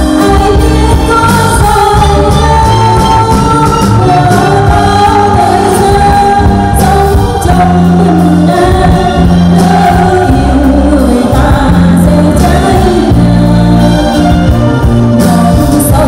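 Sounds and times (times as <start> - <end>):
live band playing: 0.0 - 16.0.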